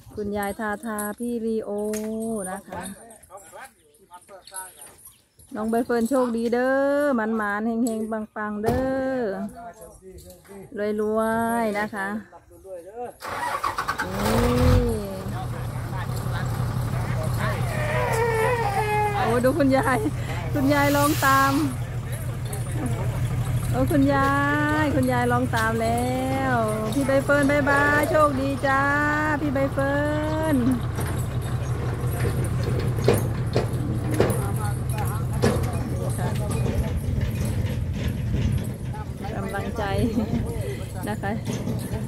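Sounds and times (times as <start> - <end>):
diesel engine starting and throbbing: 13.2 - 42.0.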